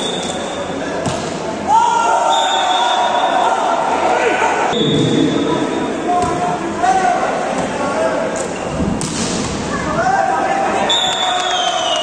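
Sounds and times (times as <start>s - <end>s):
spectators talking and calling out: 0.0s - 11.1s.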